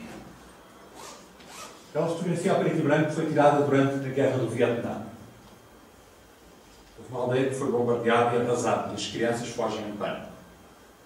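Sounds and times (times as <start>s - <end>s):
man speaking: 1.9s - 5.2s, 7.0s - 10.4s.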